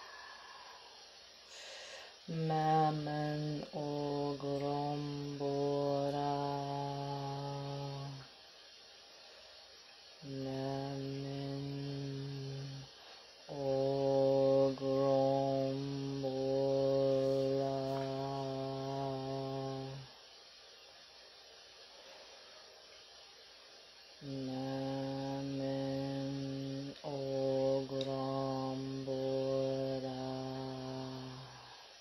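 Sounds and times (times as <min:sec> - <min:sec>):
voice chanting long low notes: 0:13.5 - 0:20.1.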